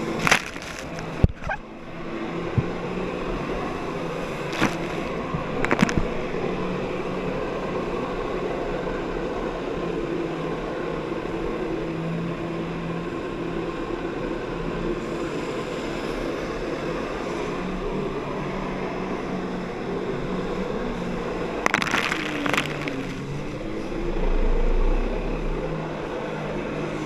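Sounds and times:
water rushing around hull: 0.0 - 10.2.

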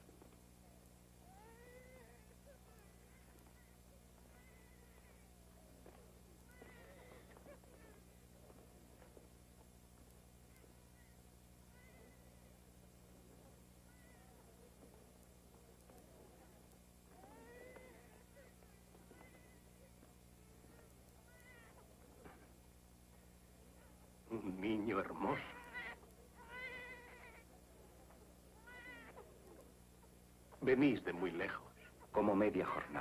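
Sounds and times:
low hum of film soundtrack: 0.0 - 33.0
distant baby crying: 1.2 - 9.1, 10.5 - 12.6, 13.8 - 14.9, 17.1 - 22.5, 25.2 - 27.6, 28.5 - 29.3.

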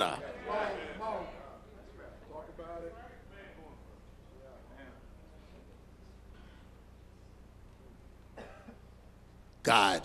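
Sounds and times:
low steady hum: 0.0 - 10.0
faint cough: 8.3 - 9.0.

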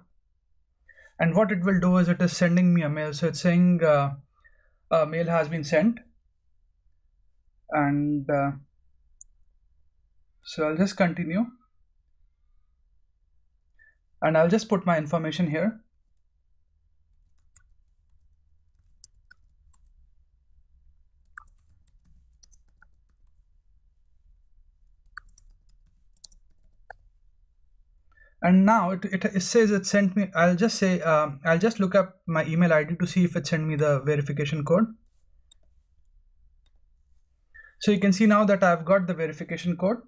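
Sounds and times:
computer mouse clicks: 17.1 - 20.0, 21.2 - 23.4, 24.8 - 27.1, 35.0 - 35.8.

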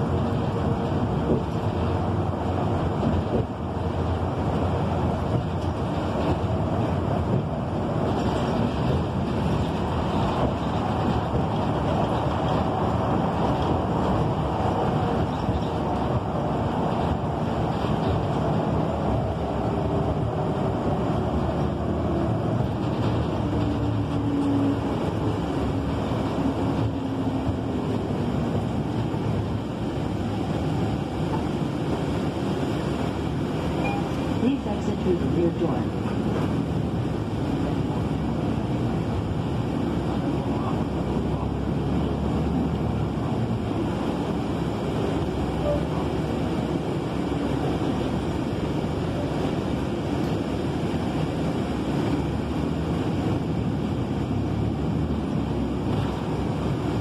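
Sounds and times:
bus engine and road noise: 0.0 - 57.0.

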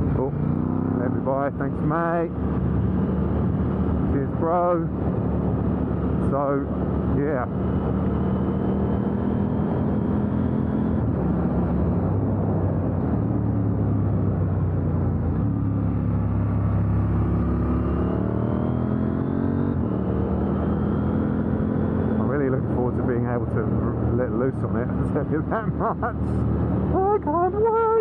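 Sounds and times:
motorcycle engine: 0.0 - 28.0.

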